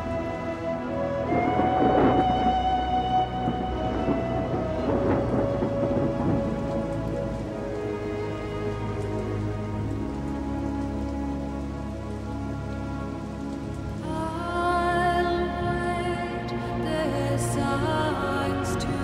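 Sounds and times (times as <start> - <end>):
dense crackle: 0.0 - 19.0
steady rain: 0.0 - 19.0
thunder: 1.0 - 9.1.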